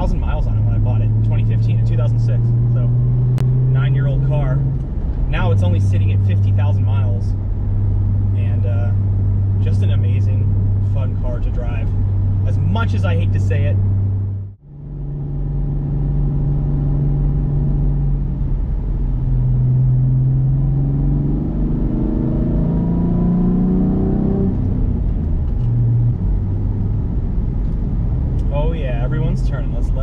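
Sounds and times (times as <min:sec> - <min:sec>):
car engine drone from inside cabin: 0:00.0 - 0:30.0.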